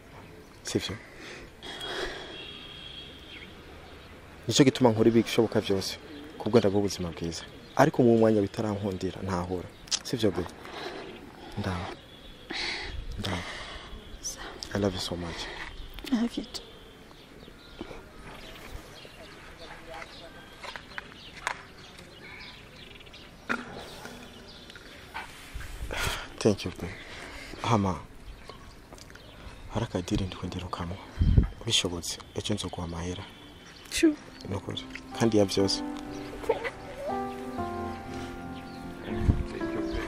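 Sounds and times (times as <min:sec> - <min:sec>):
faint outdoor background noise: 0:00.0 - 0:40.0.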